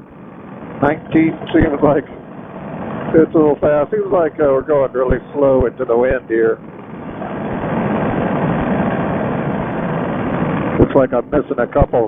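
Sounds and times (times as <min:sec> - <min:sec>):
paramotor engine and propeller: 0:00.0 - 0:12.0
wind noise: 0:00.0 - 0:12.0.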